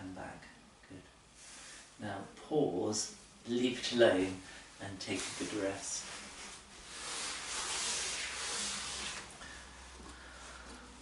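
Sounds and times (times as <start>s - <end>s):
soft even hiss: 0.0s - 11.0s.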